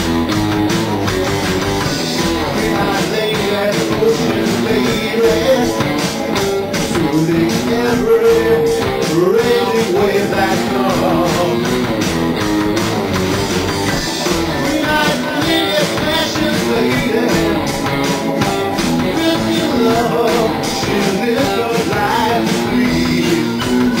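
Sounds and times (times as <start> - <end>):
live rock band playing: 0.0 - 24.0.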